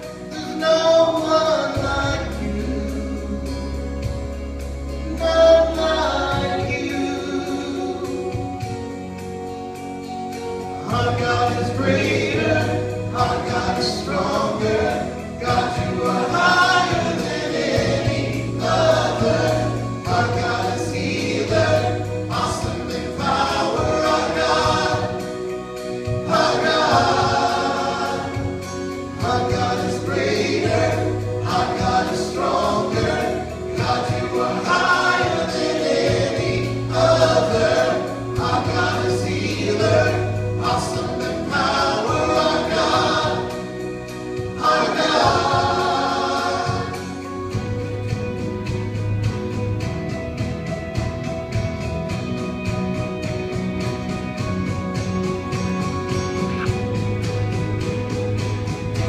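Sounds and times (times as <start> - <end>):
people singing: 0.0 - 4.4, 5.0 - 9.2, 10.8 - 48.8
acoustic guitar: 0.0 - 59.0.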